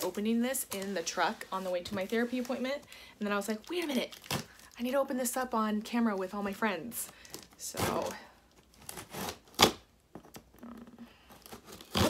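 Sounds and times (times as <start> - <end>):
packing tape and cardboard tearing: 7.2 - 12.0.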